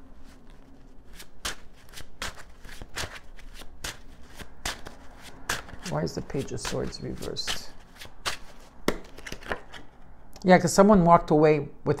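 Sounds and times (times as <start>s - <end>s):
cards being shuffled: 0.1s - 10.0s.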